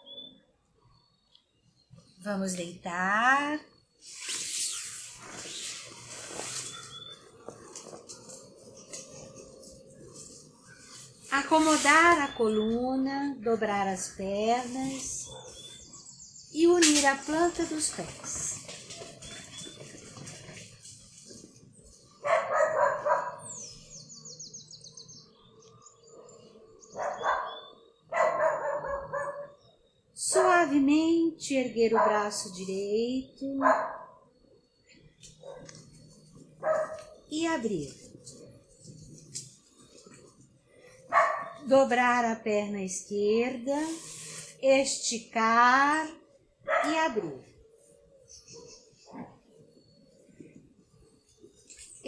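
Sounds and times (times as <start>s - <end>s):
clothing rustling on yoga mat: 4.0s - 12.3s, 17.8s - 22.0s
dog barking: 15.3s - 15.6s, 22.2s - 23.6s, 27.0s - 29.6s, 33.6s - 34.2s, 35.4s - 35.8s, 36.6s - 37.2s, 41.1s - 41.6s, 46.7s - 47.0s.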